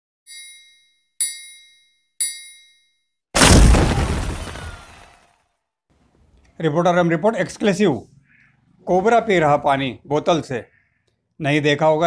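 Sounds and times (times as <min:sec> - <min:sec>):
bell-like dings: 0:00.3 - 0:03.2.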